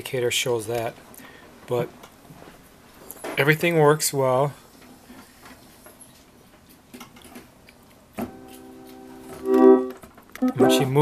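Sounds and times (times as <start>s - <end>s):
organ holding a chord: 8.3s - 11.0s.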